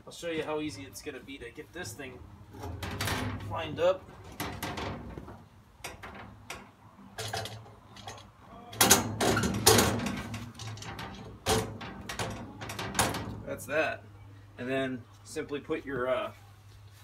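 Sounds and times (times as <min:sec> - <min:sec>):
metal clunks and scraping: 0:01.8 - 0:13.8.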